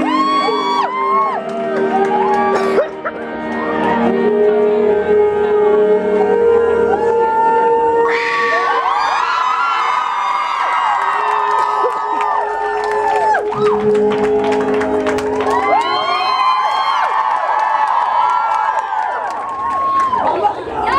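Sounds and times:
crowd screaming and cheering: 0.0 - 4.5, 6.0 - 20.9.

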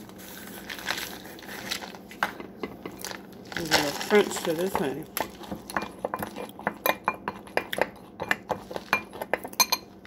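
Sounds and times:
metal spoon clinking glass bowl: 8.2 - 9.9.

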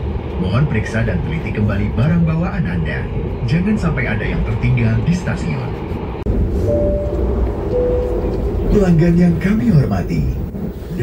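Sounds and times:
train coach rumble: 0.0 - 11.0
two-note chime: 6.7 - 8.5.

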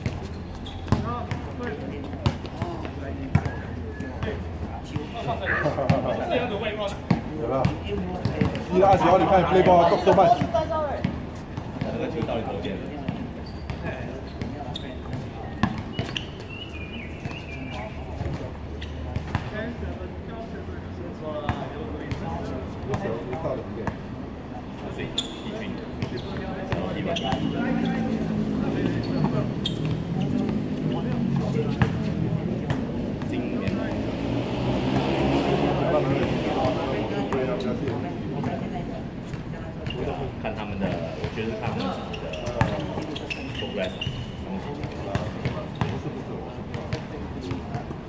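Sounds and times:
faint players' voices: 0.0 - 48.0.

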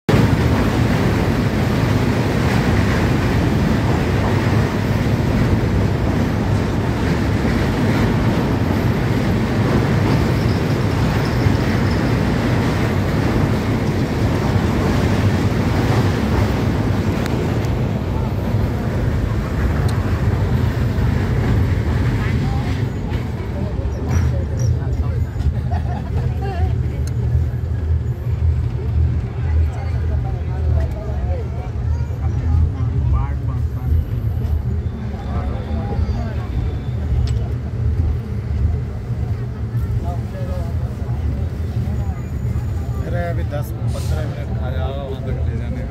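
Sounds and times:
train wheels rumbling on bridge: 0.1 - 45.9.

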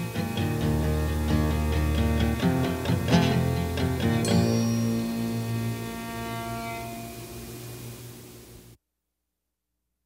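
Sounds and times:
acoustic guitar chord ringing: 0.0 - 8.2
low hum and hiss: 0.0 - 8.8.

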